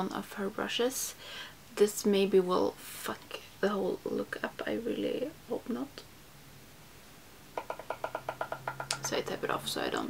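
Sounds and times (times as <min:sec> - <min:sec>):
brush tapping clicks: 0:07.6 - 0:09.4.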